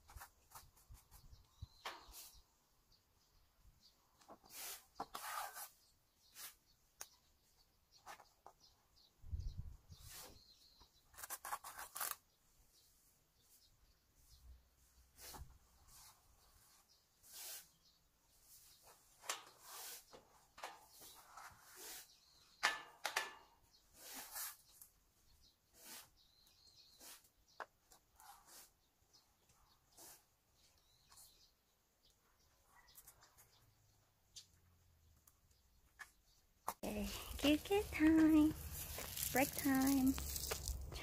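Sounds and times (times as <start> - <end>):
hands rustling and scraping siding: 35.3 - 41.0.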